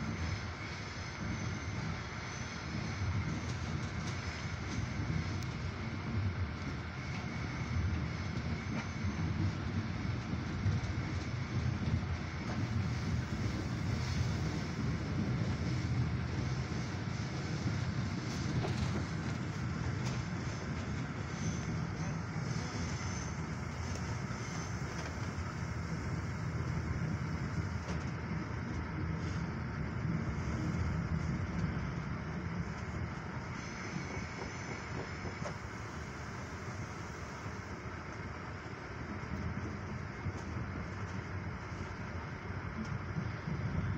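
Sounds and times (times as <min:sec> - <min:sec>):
train wheels rumbling on track: 0:00.0 - 0:43.9.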